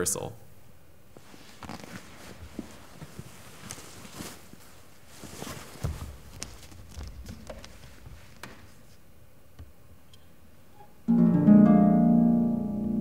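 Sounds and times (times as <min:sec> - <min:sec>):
soft barefoot footsteps: 0:01.1 - 0:09.8.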